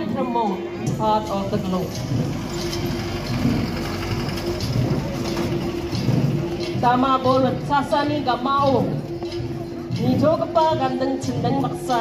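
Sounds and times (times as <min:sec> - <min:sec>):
crowd noise: 0:00.0 - 0:12.0
long drums beaten together: 0:00.0 - 0:12.0.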